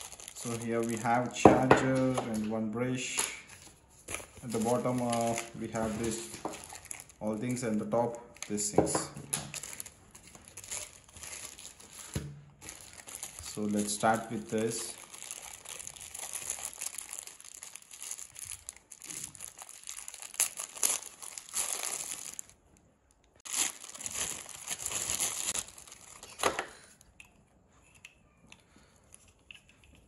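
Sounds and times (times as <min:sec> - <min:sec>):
plastic bag crinkling: 0:00.0 - 0:22.8, 0:23.4 - 0:27.0.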